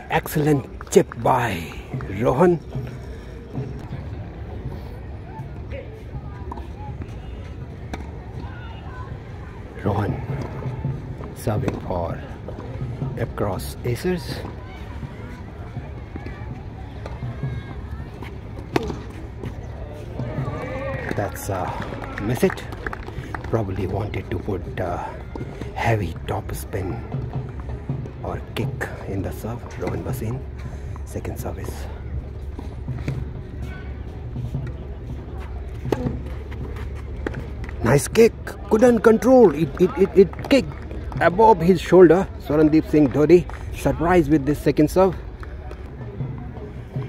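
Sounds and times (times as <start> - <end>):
background chatter: 0.0 - 47.0
tennis ball bouncing: 18.1 - 19.6, 34.3 - 41.4.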